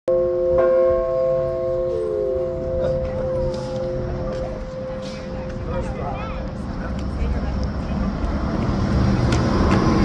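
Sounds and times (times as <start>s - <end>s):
large alarm bell ringing: 0.1s - 6.5s.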